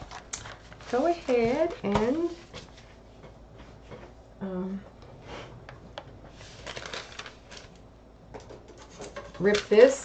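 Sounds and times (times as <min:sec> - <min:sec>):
paper rustling and crackling: 0:00.0 - 0:03.0, 0:06.3 - 0:07.8
book page turning: 0:06.3 - 0:07.8.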